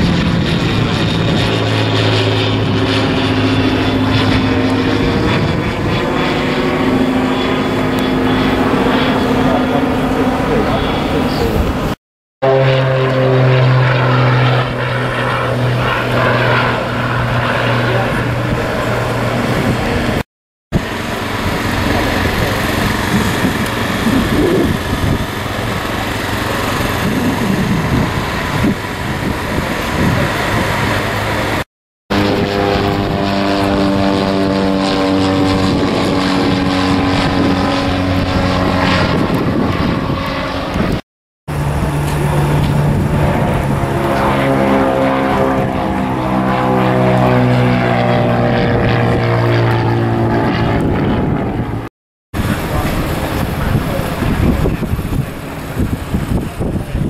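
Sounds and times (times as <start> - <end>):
small engine droning: 0.0 - 11.7
propeller aircraft flying overhead: 0.0 - 57.0
faint voices: 3.8 - 11.8, 52.4 - 57.0
outdoor background noise: 20.8 - 57.0.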